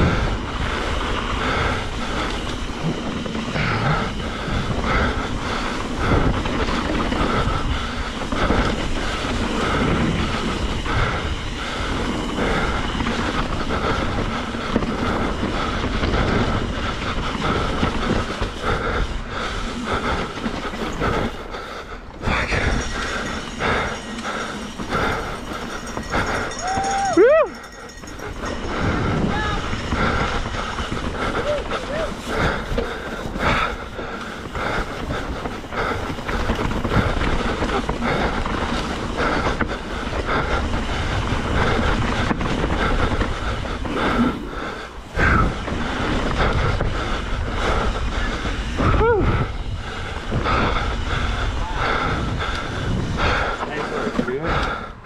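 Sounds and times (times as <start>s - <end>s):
bike rattling over rough ground: 0.0s - 55.0s.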